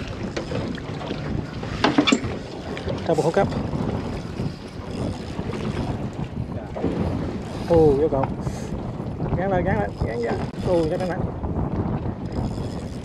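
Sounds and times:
water sloshing around boat: 0:00.0 - 0:11.2
wind on microphone: 0:00.0 - 0:13.0.

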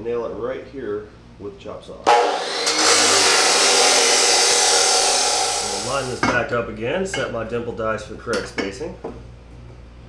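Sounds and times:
chop saw grinding metal: 0:02.1 - 0:06.2.

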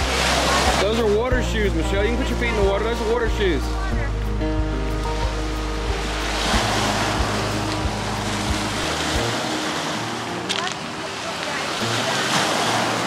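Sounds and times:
lake waves washing over pebbles: 0:00.0 - 0:04.1, 0:05.0 - 0:13.0
background music with steady beat: 0:00.0 - 0:10.6.

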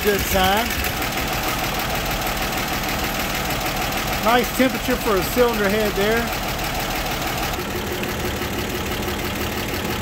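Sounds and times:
van engine idling: 0:00.0 - 0:10.0.

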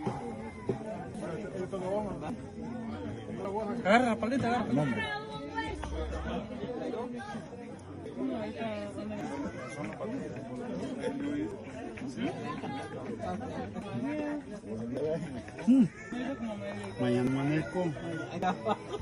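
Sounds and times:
people chattering: 0:00.0 - 0:19.0
brief loud sound: 0:05.6 - 0:07.4.

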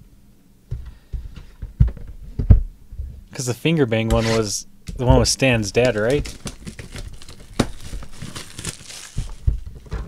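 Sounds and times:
shrink wrap crinkling and tearing: 0:05.3 - 0:09.7.

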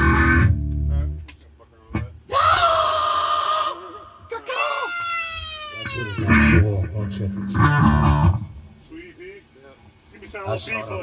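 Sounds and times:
bass and drums hits: 0:07.4 - 0:08.5.

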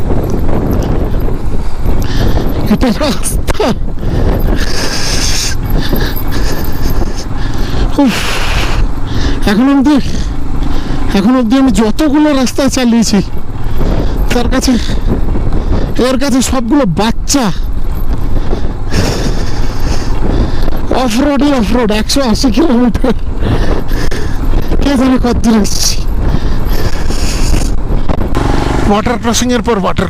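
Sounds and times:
motorcycle engine running: 0:00.0 - 0:30.0
wind buffeting microphone: 0:00.0 - 0:30.0.

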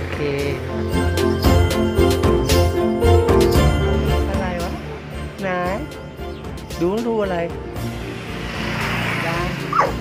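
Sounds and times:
background music: 0:00.0 - 0:10.0
dog barking: 0:09.7 - 0:10.0.

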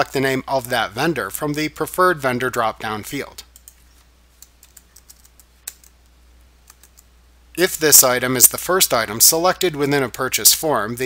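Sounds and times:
faint keyboard keystrokes: 0:03.5 - 0:06.0.

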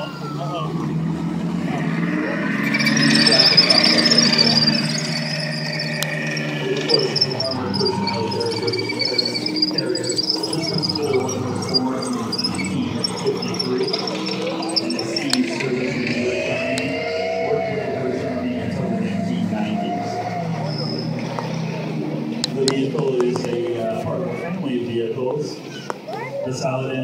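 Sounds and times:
steel tracks squealing: 0:00.0 - 0:22.7
armoured vehicle engines: 0:00.0 - 0:27.0.

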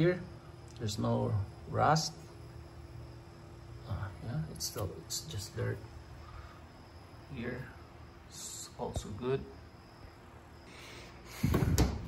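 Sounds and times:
dull thump: 0:11.4 - 0:12.0.

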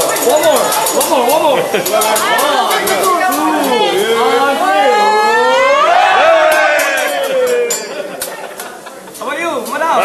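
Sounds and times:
diners talking and calling out: 0:00.0 - 0:10.0.

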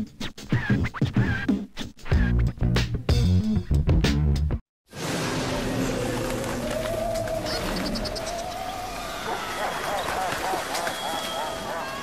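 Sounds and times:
turntable scratching: 0:00.4 - 0:02.3.

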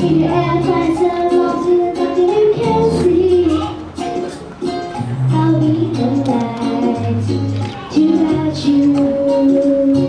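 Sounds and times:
girl singing into microphone: 0:00.0 - 0:04.1, 0:05.2 - 0:10.0
backing track with plucked strings: 0:00.0 - 0:10.0.

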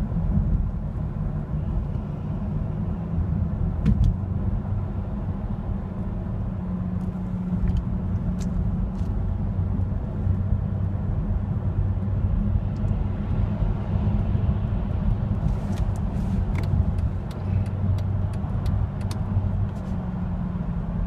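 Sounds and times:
car cabin engine and road hum: 0:00.0 - 0:21.0.

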